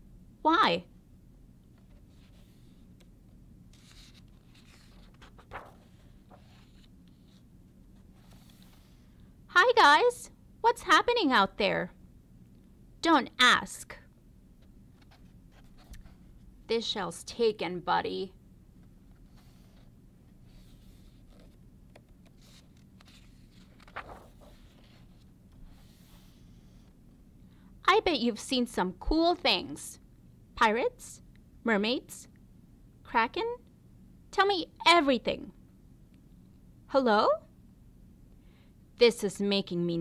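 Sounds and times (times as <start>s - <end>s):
book page turning: 3.7s - 7.4s, 8.0s - 9.0s, 20.5s - 27.0s
hand smoothing paper page: 3.7s - 7.4s, 8.0s - 9.1s, 19.2s - 21.6s, 22.2s - 27.0s
faint paper rustle: 3.7s - 9.2s, 18.8s - 27.0s.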